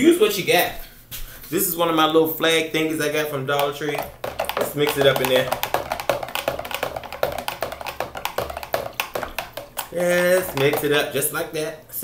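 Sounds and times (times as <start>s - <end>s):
stick stirring water: 3.0s - 11.4s
stick knocking against plastic: 3.5s - 11.2s.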